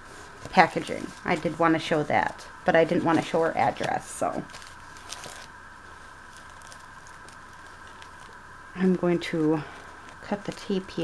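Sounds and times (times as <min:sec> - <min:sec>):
steady electrical hum: 0:00.0 - 0:11.0
tissue paper rustling: 0:00.0 - 0:11.0.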